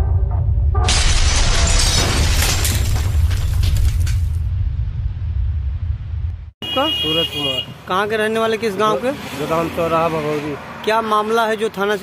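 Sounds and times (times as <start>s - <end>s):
music: 0.0s - 0.9s
deep bass rumble: 0.0s - 6.6s
crash of shattering debris: 0.8s - 4.7s.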